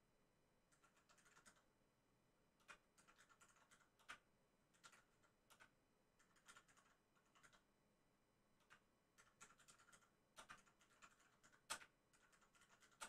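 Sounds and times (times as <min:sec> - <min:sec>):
typing on computer keyboard: 0:00.7 - 0:01.7, 0:02.6 - 0:07.6, 0:08.6 - 0:13.0.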